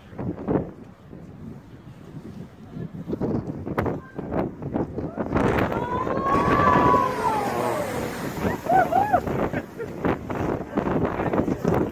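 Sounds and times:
wind on microphone: 0:00.0 - 0:11.9
person whooping: 0:05.7 - 0:09.6
rush of steam and falling water: 0:05.9 - 0:11.2.

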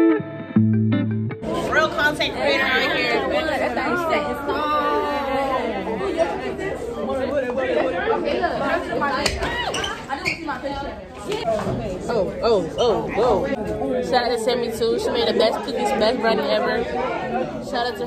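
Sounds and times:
teenagers chattering and calling out: 0:01.4 - 0:18.0.

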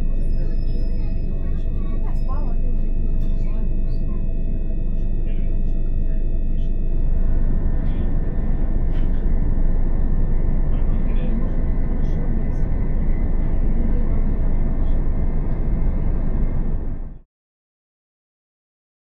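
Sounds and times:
faint whining tones: 0:00.0 - 0:17.2
train rumbling on rails: 0:00.0 - 0:17.2.

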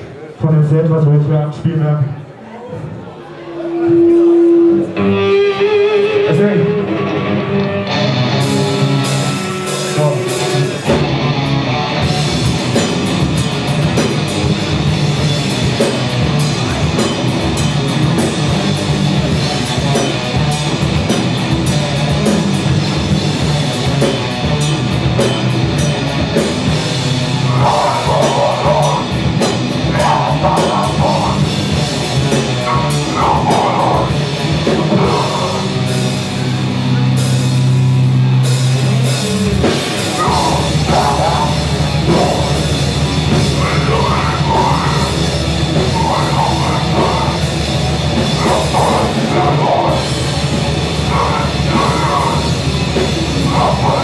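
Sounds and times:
heavy metal band playing: 0:03.7 - 0:54.0
electric guitar: 0:03.9 - 0:54.0.

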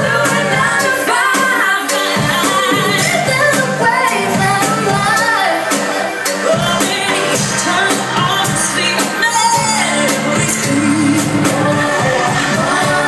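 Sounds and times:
pop song with woman singing: 0:00.0 - 0:13.0.

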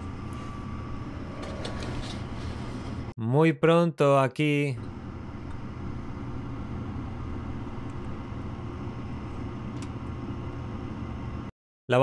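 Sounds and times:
furnace fan motor humming: 0:00.0 - 0:03.1, 0:04.6 - 0:11.5.

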